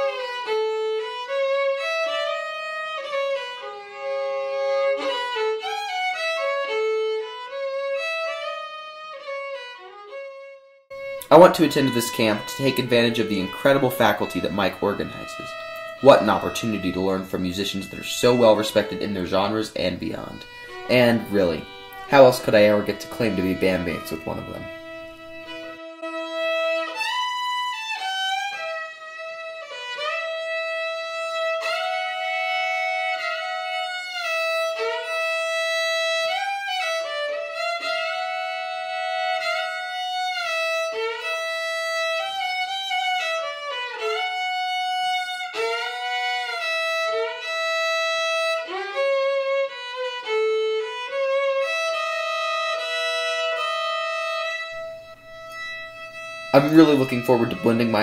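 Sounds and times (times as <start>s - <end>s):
bowed violin melody: 0.0s - 58.0s.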